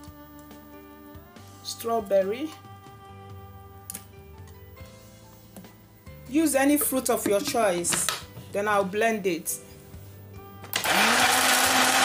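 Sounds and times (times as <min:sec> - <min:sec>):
blender motor running: 0:10.7 - 0:12.0.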